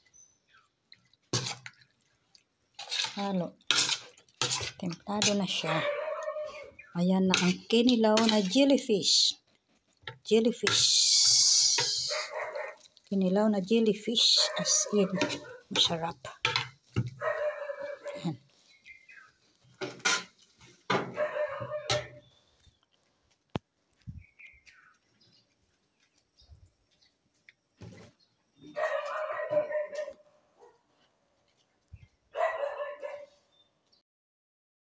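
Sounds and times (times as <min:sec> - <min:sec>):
animal calling: 0:05.6 - 0:07.0.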